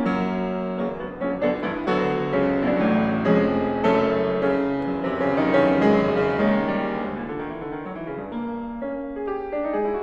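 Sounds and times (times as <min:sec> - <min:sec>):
grand piano notes: 0:00.0 - 0:10.0.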